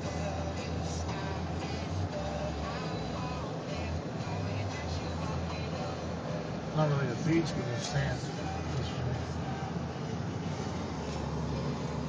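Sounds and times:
engine and road rumble: 0.0s - 12.0s
music playing: 0.0s - 12.0s.

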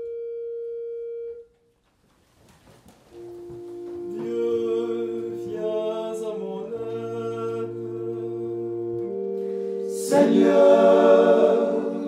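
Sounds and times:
people rustling and shuffling: 1.6s - 5.4s
organ note: 3.0s - 12.0s.

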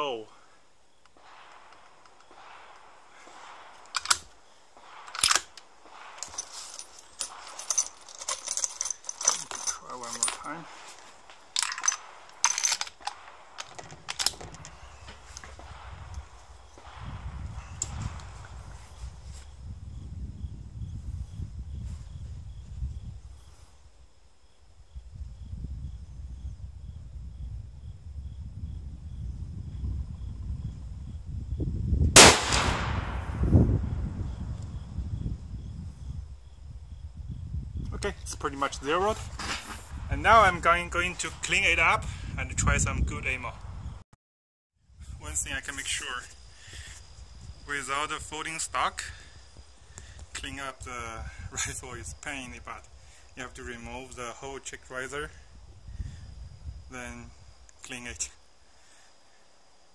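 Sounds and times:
rifle handling clicks and knocks: 1.0s - 4.4s, 5.0s - 10.5s, 11.2s - 15.7s
rifle shot with ringing tail: 1.2s - 4.2s, 32.2s - 34.4s.

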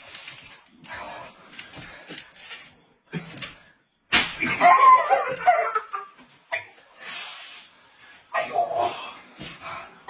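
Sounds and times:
sharp slap: 4.1s - 4.6s.

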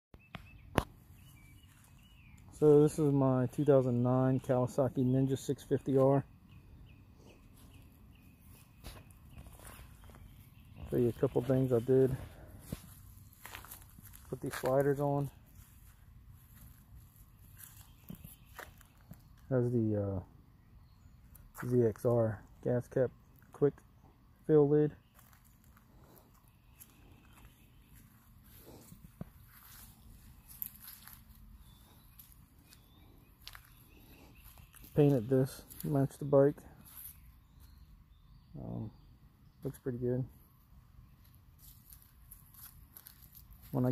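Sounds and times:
soft footstep clicks: 12.6s - 19.5s, 25.1s - 35.1s, 41.2s - 43.8s.

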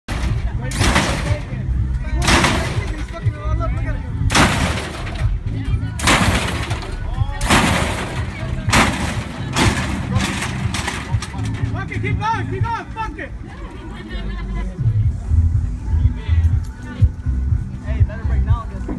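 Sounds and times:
heavy bass music: 0.1s - 13.4s, 14.2s - 18.9s
crowd voices: 0.1s - 18.9s.

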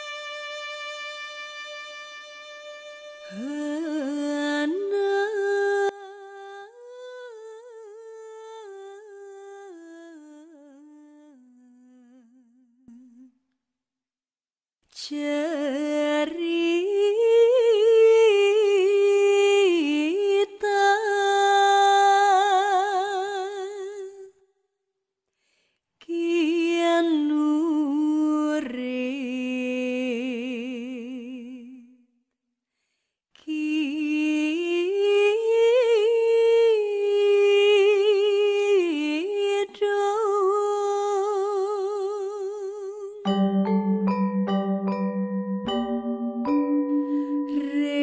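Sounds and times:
person singing ornamented melody: 3.2s - 10.5s, 40.5s - 48.0s
person humming a slow melody: 43.3s - 48.0s.

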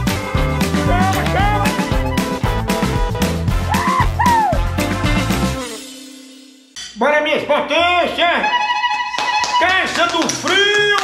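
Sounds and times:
intro theme music: 0.0s - 6.8s.

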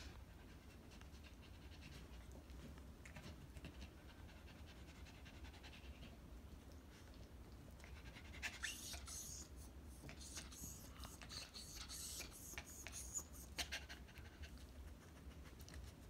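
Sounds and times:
small dog panting: 0.0s - 16.0s.

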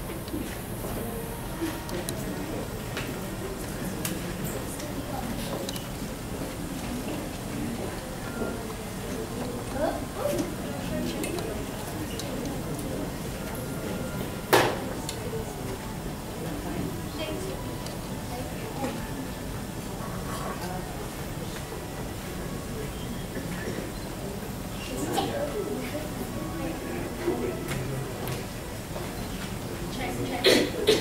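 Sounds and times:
indistinct chatter: 0.0s - 31.0s.

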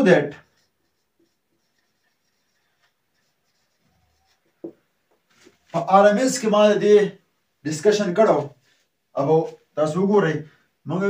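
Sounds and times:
marker scratching on whiteboard: 0.0s - 4.8s.

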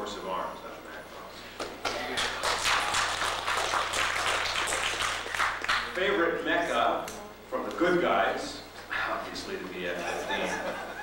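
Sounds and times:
audience applauding: 1.8s - 6.0s.

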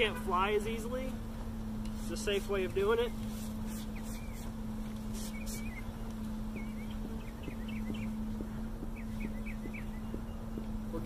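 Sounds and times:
bees humming: 0.0s - 11.0s
bird chirping: 3.1s - 11.0s
spray bottle squirts: 3.2s - 5.8s.

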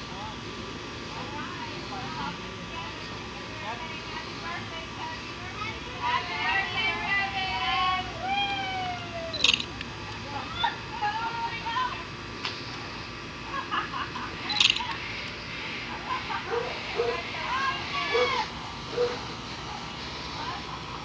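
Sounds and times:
sharp clicks: 9.4s - 10.2s.

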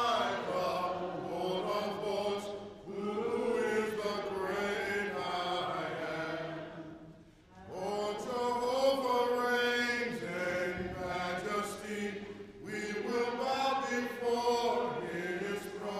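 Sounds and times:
man singing into a microphone: 7.7s - 15.9s.

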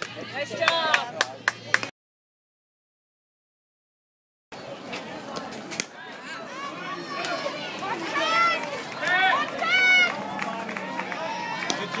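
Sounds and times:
people shouting and cheering: 0.0s - 1.8s, 6.0s - 12.0s.

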